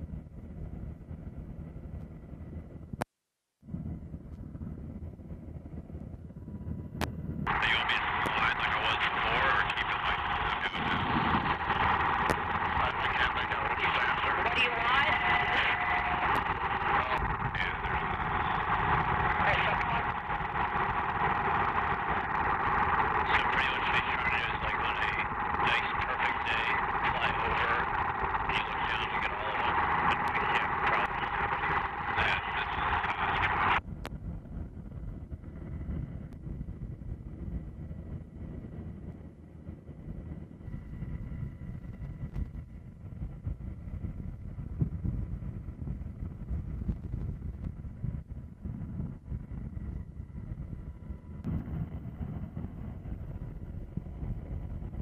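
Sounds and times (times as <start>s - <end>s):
low steady rumble: 3.6s - 55.0s
loud radio static: 7.5s - 33.8s.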